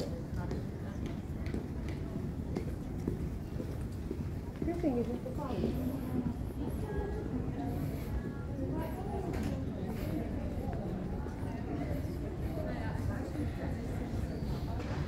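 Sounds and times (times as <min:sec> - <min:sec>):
people talking: 0:00.0 - 0:03.8, 0:04.5 - 0:15.0
low concourse rumble: 0:00.0 - 0:15.0.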